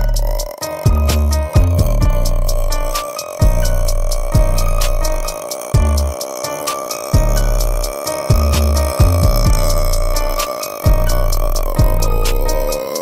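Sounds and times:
deep bass notes: 0:00.0 - 0:06.4, 0:07.2 - 0:12.8
rapid hi-hats: 0:00.0 - 0:13.0
sustained synth tone: 0:00.0 - 0:13.0.

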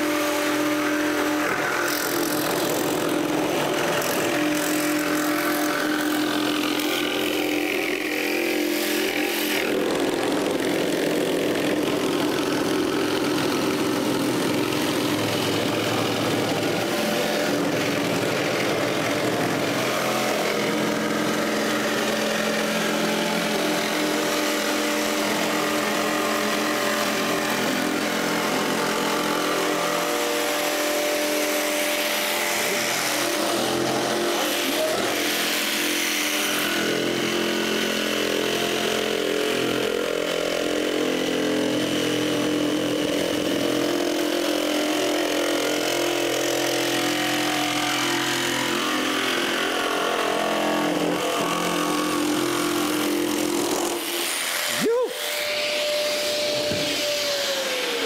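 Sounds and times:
jigsaw motor whine: 0:00.0 - 0:58.0
saw blade cutting: 0:00.0 - 0:58.0.

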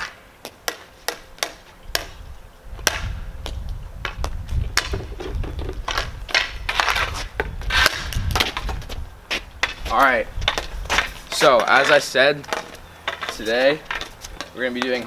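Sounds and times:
hockey stick tapping ball on asphalt: 0:00.0 - 0:02.2, 0:02.8 - 0:15.0.

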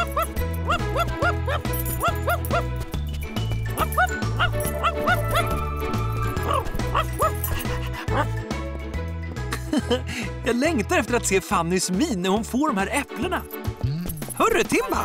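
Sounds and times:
cartoon dog yipping and barking: 0:00.0 - 0:02.7, 0:03.8 - 0:08.3.

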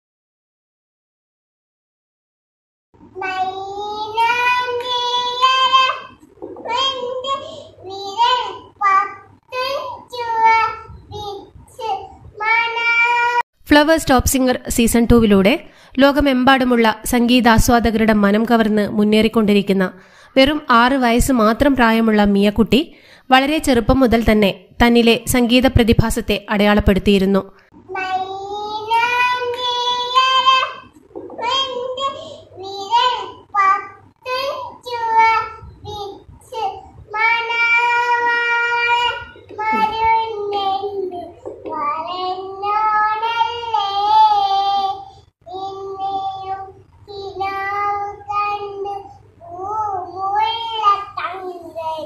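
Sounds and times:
little girl singing: 0:03.1 - 0:13.5, 0:27.8 - 0:52.0.

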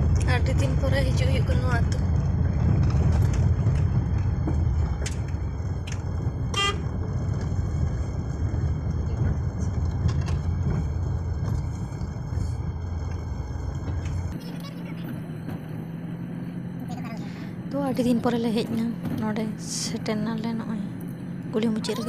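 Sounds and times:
car engine and tyres rumbling: 0:00.0 - 0:22.0
car horn toot: 0:06.5 - 0:07.0.

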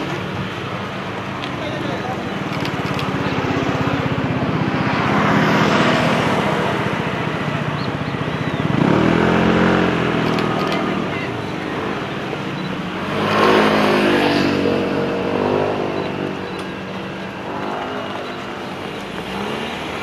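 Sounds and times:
vehicle engines passing: 0:00.0 - 0:20.0
engine accelerating: 0:01.8 - 0:20.0.

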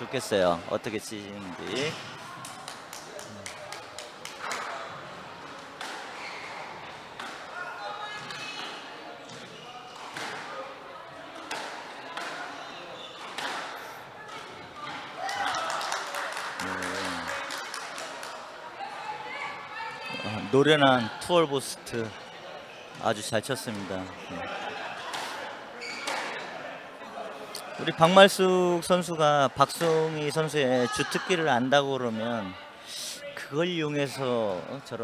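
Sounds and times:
squash racket strikes: 0:05.7 - 0:07.5, 0:11.4 - 0:12.5, 0:13.2 - 0:13.8
shoes squeaking on wooden floor: 0:06.1 - 0:06.8, 0:25.8 - 0:26.4.

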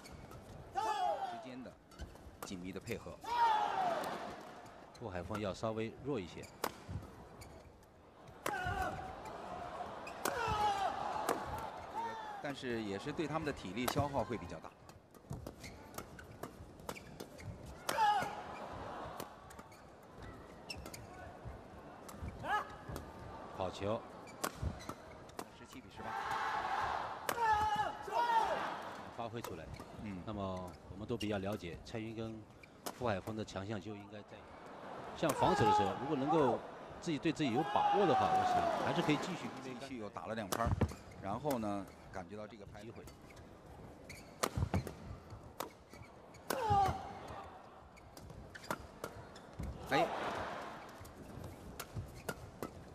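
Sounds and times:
court shoes squeaking: 0:00.0 - 0:00.7, 0:01.8 - 0:03.0, 0:04.0 - 0:05.6, 0:06.2 - 0:12.2, 0:13.3 - 0:23.4, 0:24.0 - 0:25.9, 0:28.8 - 0:33.5, 0:38.1 - 0:52.9
racket hitting shuttlecock: 0:08.3 - 0:09.1, 0:10.0 - 0:11.9, 0:24.3 - 0:25.5, 0:44.4 - 0:45.0, 0:46.4 - 0:47.0
racquet striking shuttlecock: 0:24.4 - 0:25.5.

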